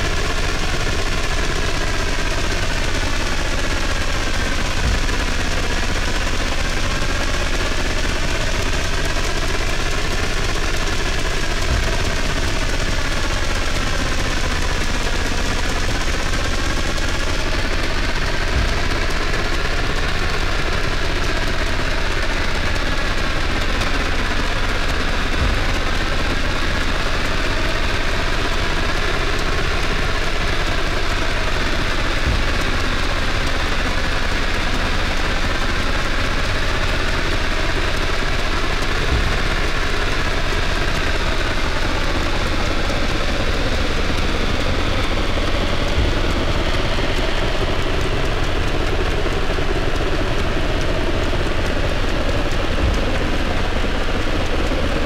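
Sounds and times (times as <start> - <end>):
electronic synthesizer drone: 0.0 - 55.0.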